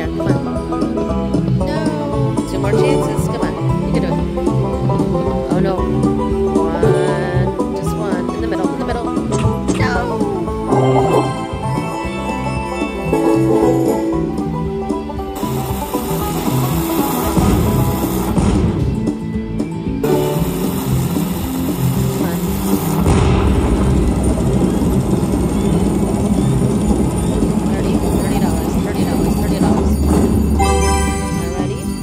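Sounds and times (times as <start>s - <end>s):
slot machine electronic music: 9.3s - 18.8s, 20.0s - 32.0s
low rumble: 20.3s - 32.0s
deep explosion boom: 22.7s - 27.6s.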